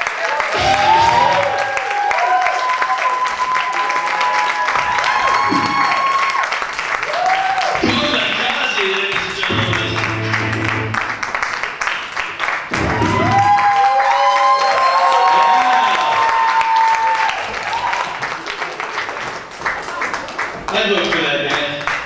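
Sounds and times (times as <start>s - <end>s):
audience applauding: 0.0s - 22.0s
loud music with held notes: 9.5s - 11.2s.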